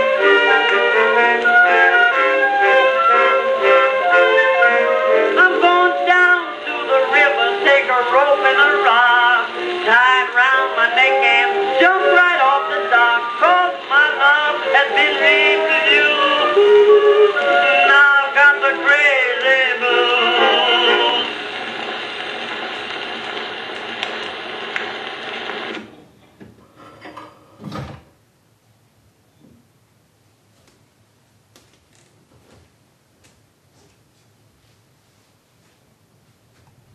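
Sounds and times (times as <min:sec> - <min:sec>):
record surface noise hiss: 0:00.0 - 0:36.9
man singing: 0:04.1 - 0:21.4.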